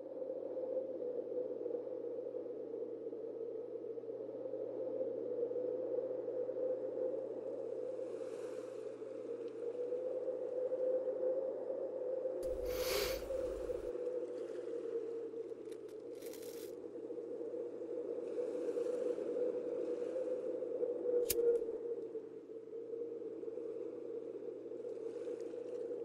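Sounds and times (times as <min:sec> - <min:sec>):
constant low hum: 0:12.4 - 0:14.6.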